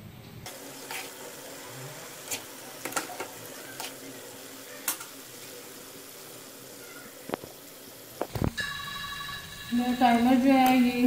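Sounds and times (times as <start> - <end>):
lentils sizzling in hot fat: 0.5 - 11.0.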